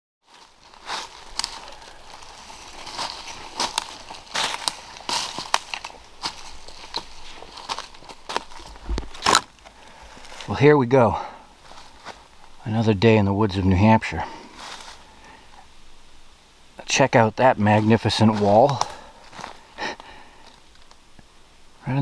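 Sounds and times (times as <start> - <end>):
footsteps crunching through dry leaves: 0.2 - 16.2, 17.6 - 21.0.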